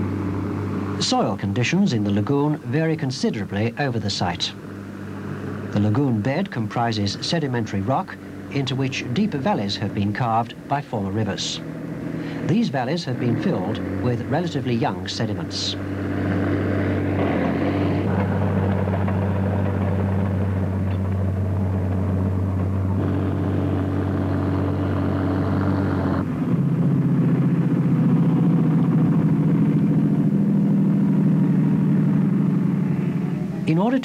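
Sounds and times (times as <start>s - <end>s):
heavy diesel engine under load: 0.0s - 34.0s.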